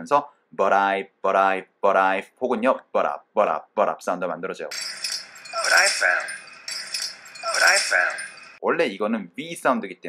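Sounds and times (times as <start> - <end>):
person speaking dialogue: 5.5 - 6.5, 7.3 - 8.4.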